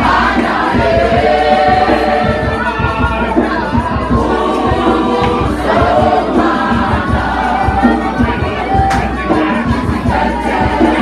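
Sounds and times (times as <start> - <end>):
quick low beat: 0.0 - 11.0
youth choir singing: 0.0 - 11.0.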